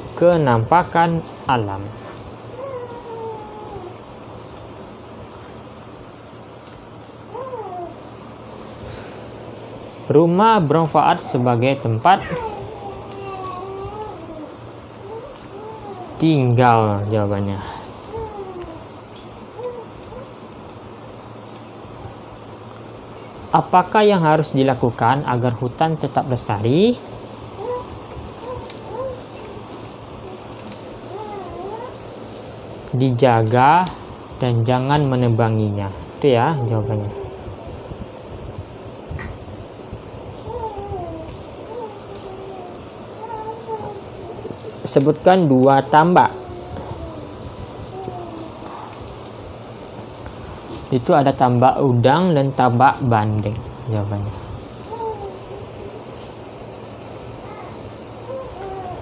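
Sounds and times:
steady background hiss: 0:00.0 - 0:59.0.

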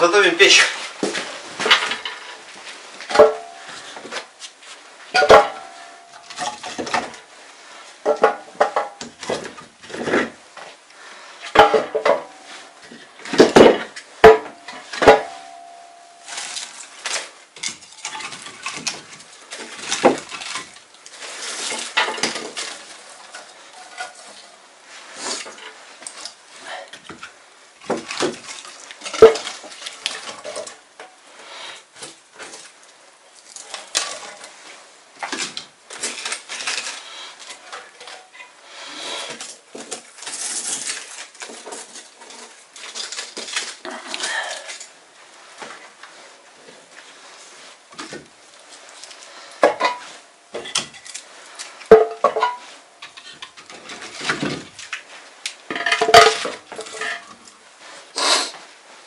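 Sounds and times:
rustling handling noise: 0:00.0 - 0:59.0.

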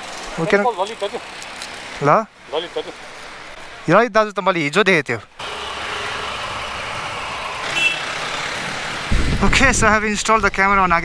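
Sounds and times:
motorcycles idling: 0:00.0 - 0:02.6, 0:05.4 - 0:09.4
street traffic: 0:00.0 - 0:11.0.

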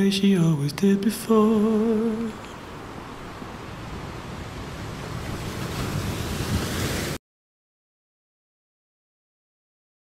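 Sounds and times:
sea waves breaking: 0:00.7 - 0:07.2.

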